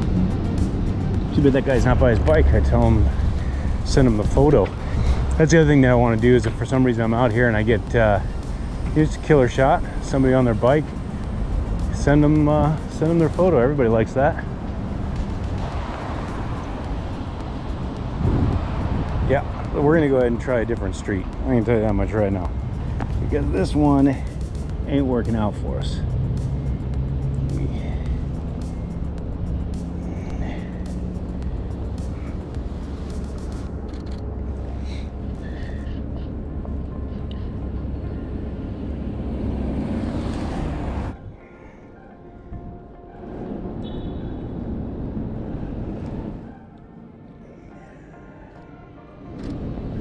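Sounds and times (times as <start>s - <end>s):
city street traffic rumble: 0.0s - 50.0s
wind noise on microphone: 14.5s - 20.0s.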